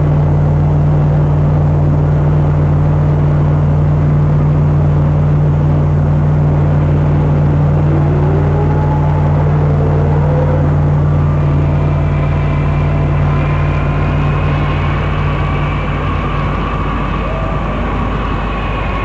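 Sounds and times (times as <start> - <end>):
jet engine low rumble: 0.0 - 19.0
turbine whine rising: 0.0 - 19.0.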